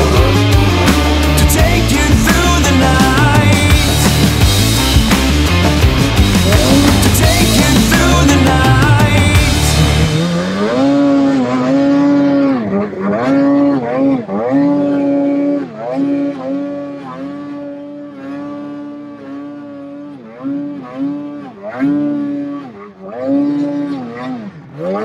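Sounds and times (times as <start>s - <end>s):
background music: 0.0s - 12.0s
snowmobile engine revving: 0.0s - 25.0s.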